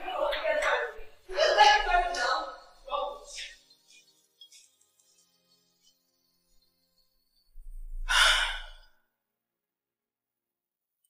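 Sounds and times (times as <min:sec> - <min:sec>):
woman sighing heavily: 0:08.1 - 0:08.9.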